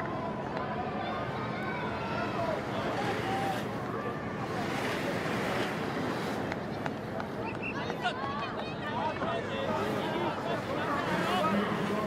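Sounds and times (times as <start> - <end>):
wind: 0.0 - 12.0.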